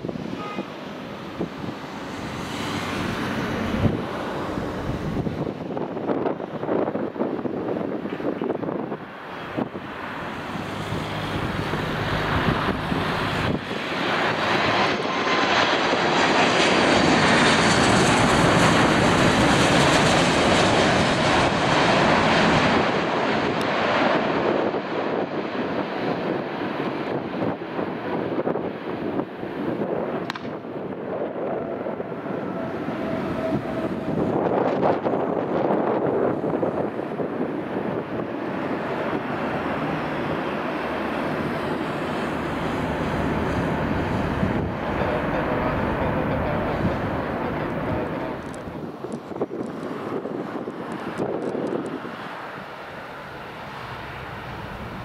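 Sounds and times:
jet aircraft passing overhead: 0:00.0 - 0:55.0
low jet engine noise: 0:00.0 - 0:55.0.

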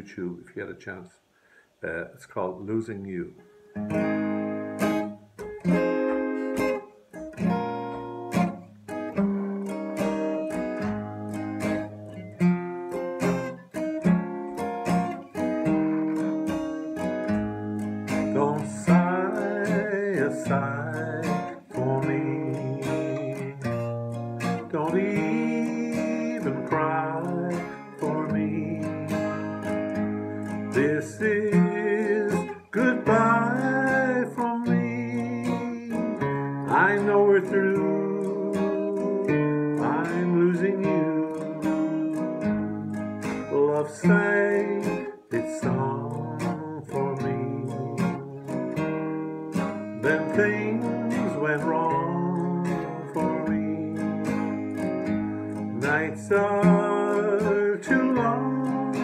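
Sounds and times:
acoustic guitar strumming: 0:03.1 - 0:59.0
man singing: 0:18.1 - 0:29.9, 0:30.6 - 0:59.0.

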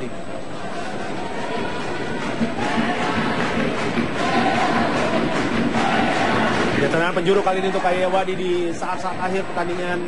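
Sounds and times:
stadium crowd chanting and singing: 0:00.1 - 0:10.0.

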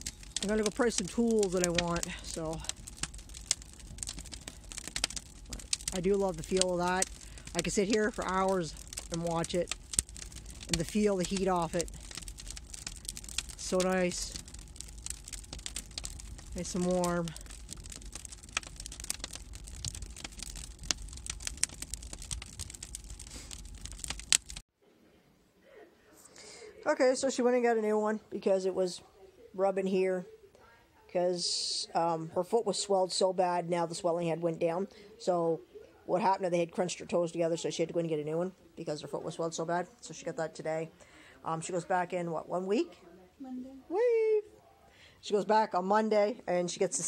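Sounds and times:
low steady rumble: 0:00.0 - 0:24.6
wood fire crackling and popping: 0:00.0 - 0:24.6, 0:31.4 - 0:35.5, 0:36.1 - 0:43.0.

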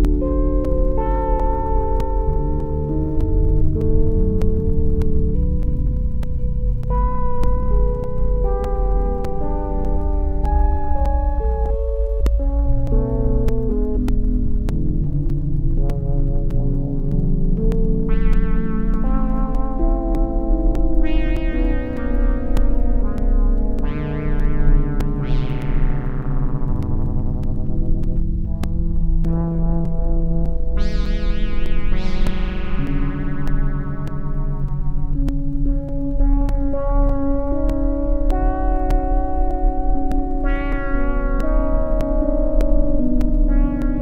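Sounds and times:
regular clicking: 0:00.0 - 0:44.0
soft ticking: 0:00.0 - 0:44.0
synthesizer chords: 0:00.0 - 0:44.0.

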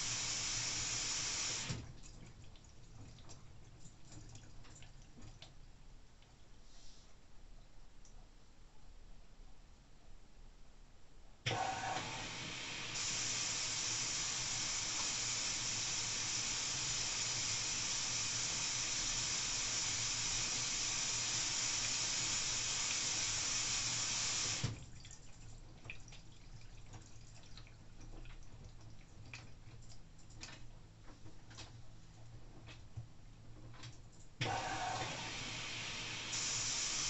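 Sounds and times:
wet laundry ticks and drips: 0:01.0 - 0:06.6, 0:07.6 - 0:08.3, 0:18.2 - 0:34.5
water rushing into drum: 0:11.5 - 0:25.0.

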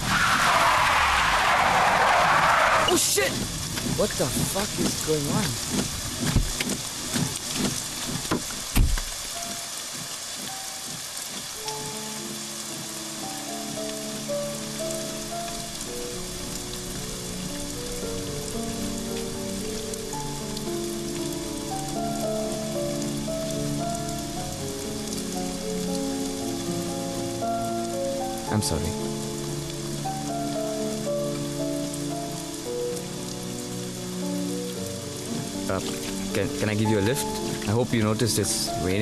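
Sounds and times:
heavy rain falling: 0:00.0 - 0:39.0
soft background music: 0:09.2 - 0:39.0.

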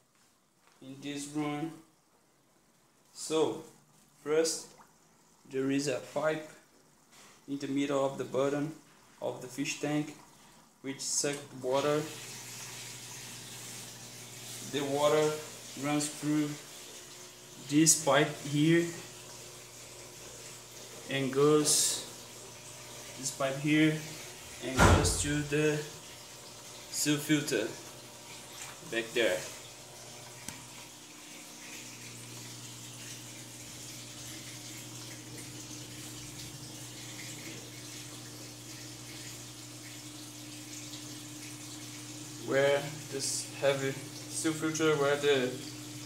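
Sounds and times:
water running through pipes: 0:00.1 - 0:46.0
pump low hum: 0:11.3 - 0:46.0.

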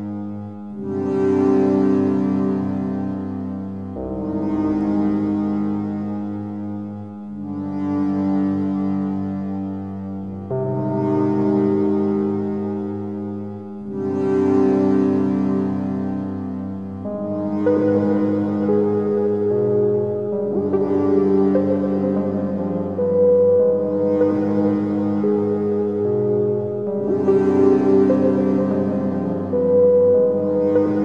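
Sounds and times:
synthesizer pad chords: 0:00.0 - 0:31.0.

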